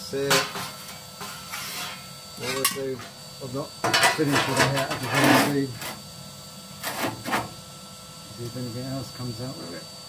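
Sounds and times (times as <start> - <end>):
metal scraping in stove base: 0.4 - 3.0, 3.9 - 6.0.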